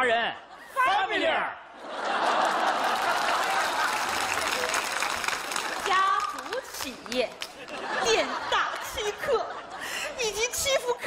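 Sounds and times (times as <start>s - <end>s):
audience applauding: 2.1s - 8.4s.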